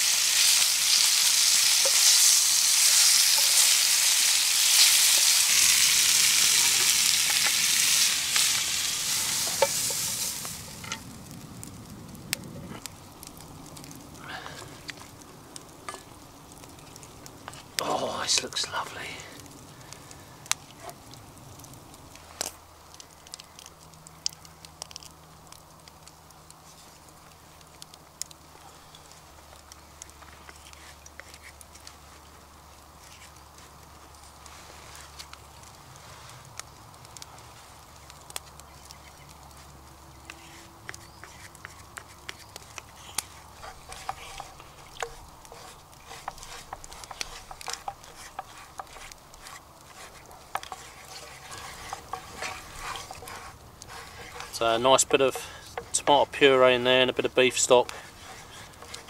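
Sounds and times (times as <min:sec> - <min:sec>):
wooden spatula scraping a frying pan: 0:00.3 - 0:11.0, 0:40.3 - 0:56.5, 0:57.4 - 0:59.0.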